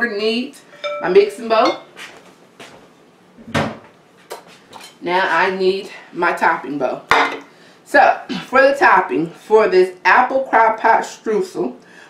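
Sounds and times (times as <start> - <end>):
dishes clinking: 0.8 - 2.0, 7.1 - 7.5.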